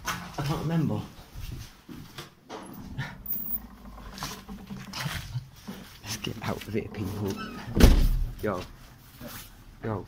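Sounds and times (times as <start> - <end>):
footsteps down stairs: 1.0 - 3.2.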